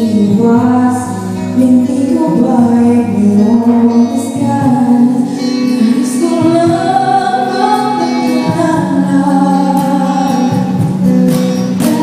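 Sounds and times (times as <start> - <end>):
guitar: 0.0 - 12.0
percussion: 0.0 - 12.0
woman singing: 0.0 - 12.0.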